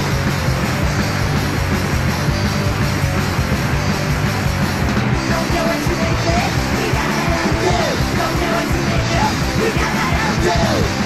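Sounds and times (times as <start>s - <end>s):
punk band playing: 0.0s - 11.0s
shouted vocals: 5.3s - 11.0s.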